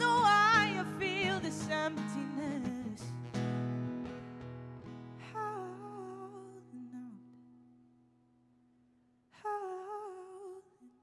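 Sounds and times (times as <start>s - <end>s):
acoustic guitar notes: 0.0s - 9.2s.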